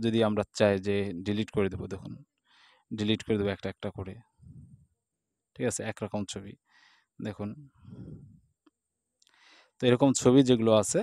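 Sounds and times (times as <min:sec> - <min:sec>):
person speaking: 0:00.0 - 0:02.2, 0:02.9 - 0:04.7, 0:05.6 - 0:06.5, 0:07.2 - 0:08.3, 0:09.8 - 0:11.0
short breath: 0:02.5 - 0:02.9, 0:06.7 - 0:07.1, 0:09.3 - 0:09.8.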